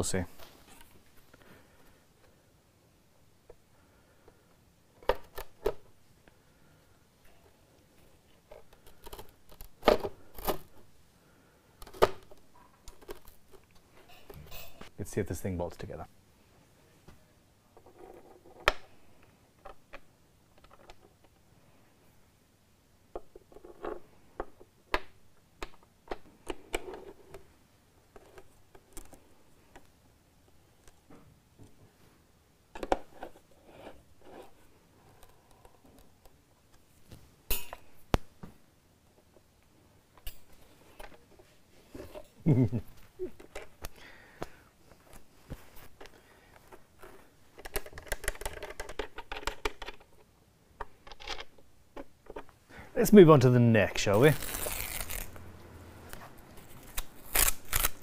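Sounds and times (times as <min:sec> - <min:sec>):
person laughing: 0:42.4 - 0:43.5.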